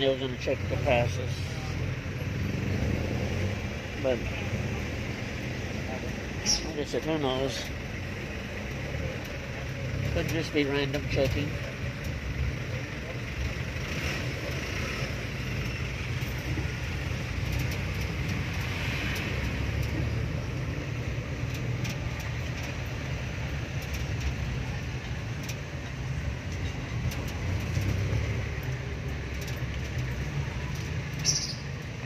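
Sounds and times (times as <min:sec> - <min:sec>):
diesel engine running: 0:00.0 - 0:32.0
light clicks and rattles: 0:15.3 - 0:32.0.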